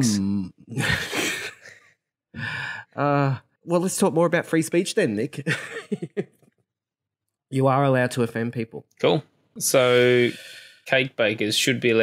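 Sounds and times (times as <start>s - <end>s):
man laughing: 0.7s - 1.9s, 5.5s - 6.3s
man exhaling breathily: 9.8s - 10.8s.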